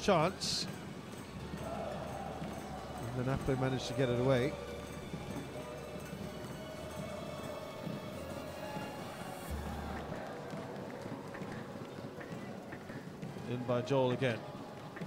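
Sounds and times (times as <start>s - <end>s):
faint stadium ambience: 0.0s - 15.0s.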